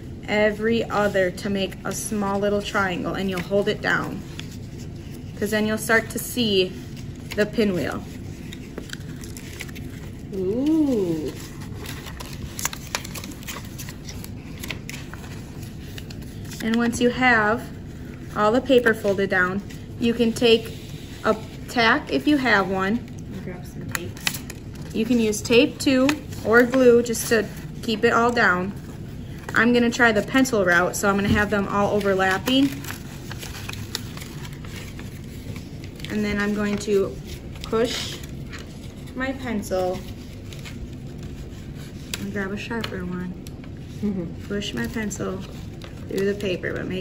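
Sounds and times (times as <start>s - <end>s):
low room noise: 0.0s - 47.0s
paper rustling and crinkling: 0.4s - 47.0s.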